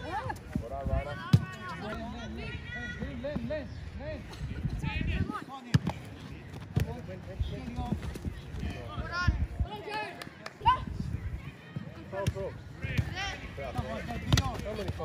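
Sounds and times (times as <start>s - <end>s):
ball being kicked: 13.8s - 15.0s.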